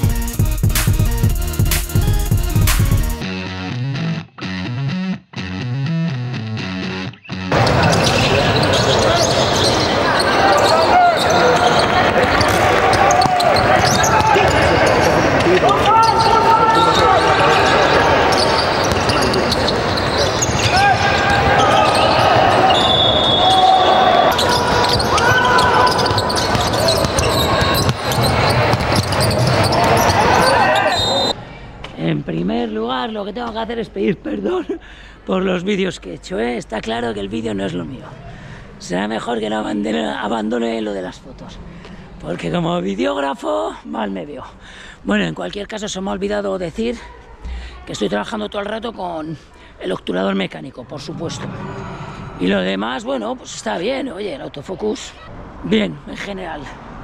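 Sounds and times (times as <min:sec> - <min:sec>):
music: 0:00.0 - 0:07.5
shouting voices: 0:07.6 - 0:28.5
basketball bouncing on court: 0:18.4 - 0:21.5, 0:24.4 - 0:30.5.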